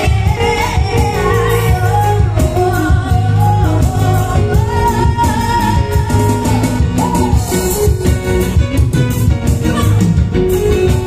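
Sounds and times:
woman singing pop ballad: 0.0s - 8.2s
keyboard: 0.0s - 11.0s.

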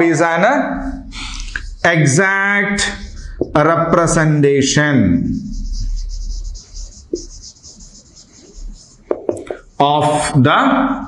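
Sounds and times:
marker pen scratching whiteboard: 1.2s - 10.3s.

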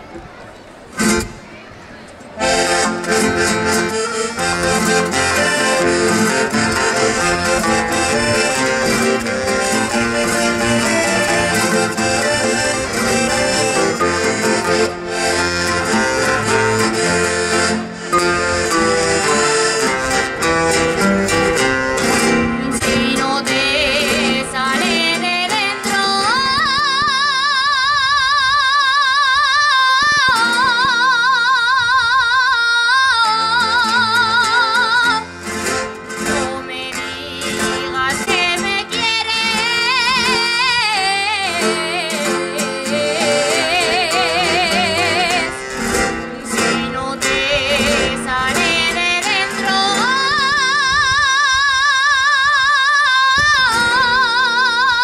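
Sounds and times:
accordion and guitars playing: 0.0s - 55.0s
woman singing with vibrato: 2.4s - 55.0s.

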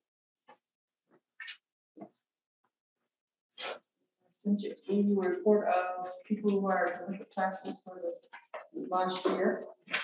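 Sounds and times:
person speaking: 3.6s - 10.0s.

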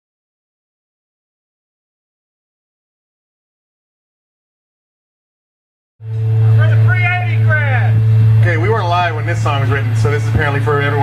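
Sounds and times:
loud steady low hum: 6.0s - 11.0s
man talking over pa system: 6.4s - 11.0s.

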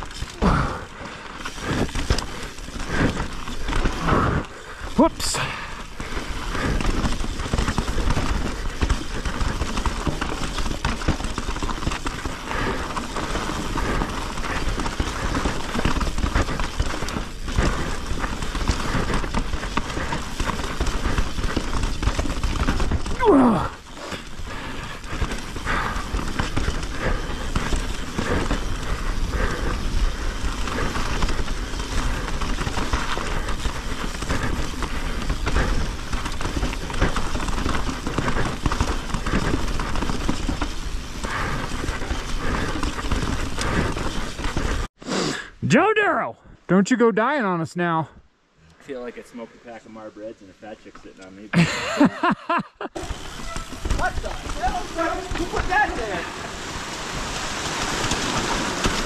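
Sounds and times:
bike rattling: 0.0s - 45.0s, 48.7s - 59.0s
bike tyres crunching over stones: 0.0s - 45.0s, 48.8s - 59.0s.

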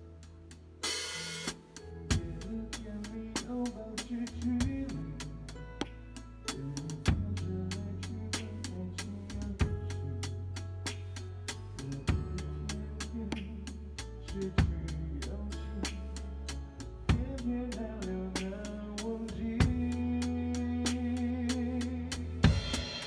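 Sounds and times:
drum kit: 0.0s - 23.0s
live band playing pop song: 0.8s - 23.0s.

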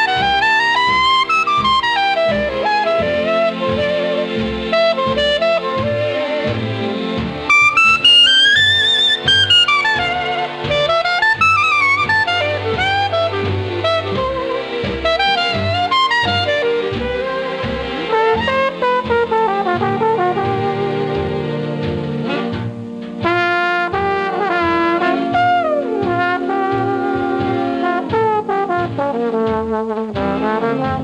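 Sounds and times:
brass and saxophone melody: 0.0s - 31.0s.

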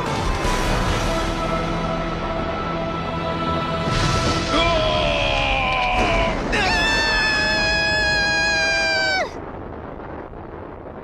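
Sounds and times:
fire blast rumbling: 3.8s - 11.0s
cartoon character screaming: 5.0s - 9.4s.

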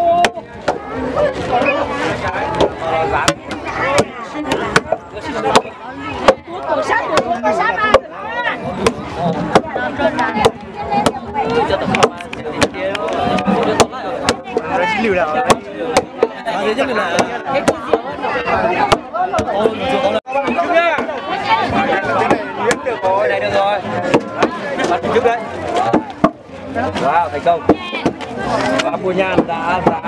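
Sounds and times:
crowd voices: 0.0s - 30.0s
wooden mallets pounding rice: 0.0s - 30.0s.

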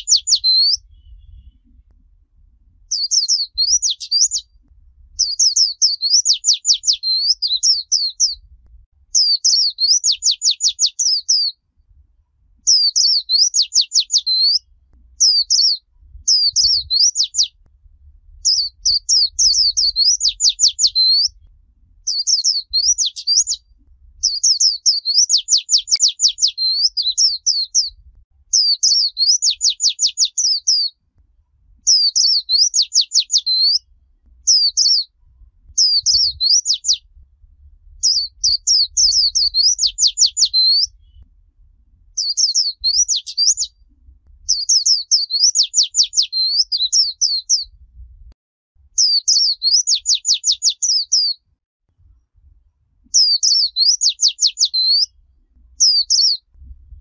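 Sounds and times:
bird singing chattering song: 0.0s - 1.8s, 2.9s - 11.6s, 12.6s - 17.6s, 18.4s - 31.0s, 31.8s - 35.2s, 35.8s - 37.1s, 38.0s - 41.3s, 42.2s - 43.8s, 44.5s - 47.7s, 49.0s - 51.4s, 53.1s - 55.2s, 55.8s - 56.5s.

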